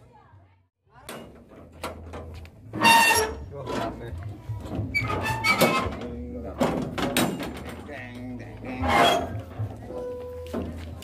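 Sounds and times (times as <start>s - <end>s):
men talking: 7.6s - 9.5s.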